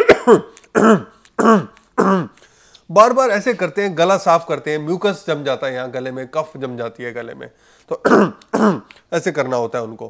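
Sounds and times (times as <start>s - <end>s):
man clearing his throat: 0.0s - 2.4s, 7.9s - 8.9s.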